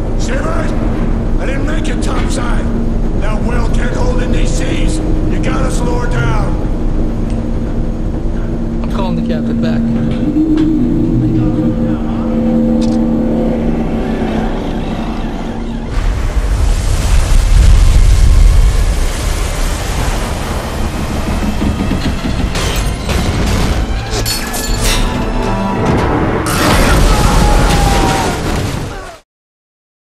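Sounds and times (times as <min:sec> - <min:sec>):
storm wind roaring: 0:00.0 - 0:24.1, 0:25.2 - 0:29.1
heavy seas against hull: 0:00.0 - 0:24.2
engine-room machinery drone: 0:00.0 - 0:28.3
sharp knocks and crashes: 0:20.2 - 0:27.0.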